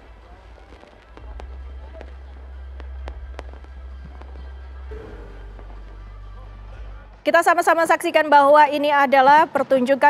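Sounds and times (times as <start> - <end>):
fireworks sharp bangs: 0.0 - 7.2
fireworks low rumble: 0.0 - 9.8.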